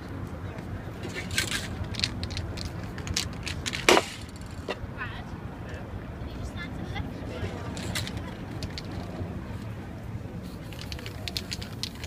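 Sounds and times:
faint voices talking: 0.0 - 3.2, 4.2 - 12.0.

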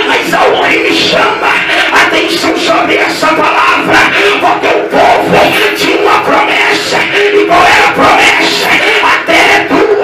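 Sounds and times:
man shouting into a microphone: 0.0 - 10.0.

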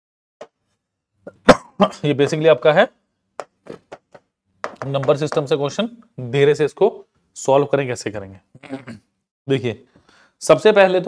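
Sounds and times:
pen tapping on a screen: 3.4 - 5.5.

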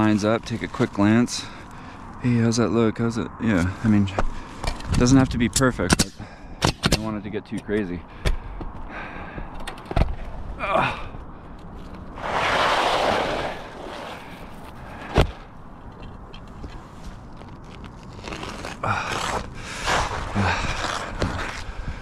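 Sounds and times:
shingles scraping and rustling: 11.8 - 15.4, 16.0 - 21.8.

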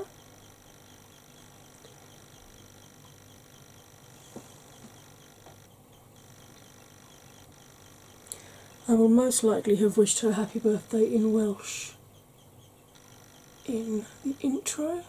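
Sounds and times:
soft ticks: 12.9 - 13.8.

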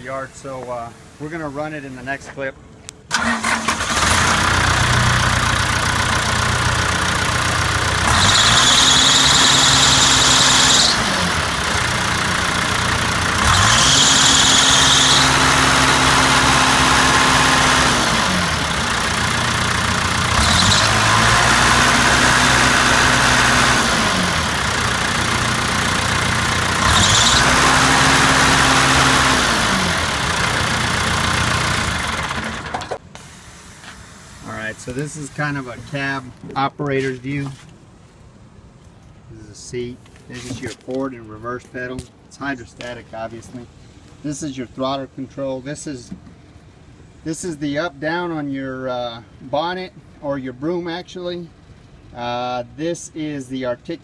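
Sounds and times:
diesel engine revving: 3.1 - 36.4
high squeal: 8.1 - 11.2, 13.7 - 15.5.

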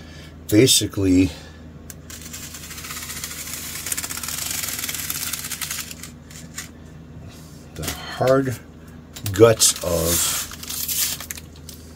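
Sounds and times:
blade slicing plastic wrap: 9.9 - 11.4.

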